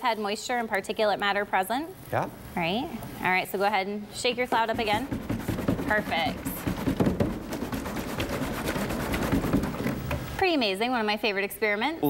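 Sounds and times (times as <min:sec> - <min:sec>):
jug being shaken: 0:04.7 - 0:10.4.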